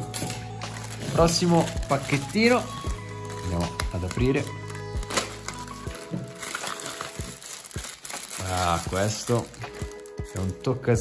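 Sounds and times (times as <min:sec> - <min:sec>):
plastic bag crinkling and tearing: 0:00.0 - 0:11.0.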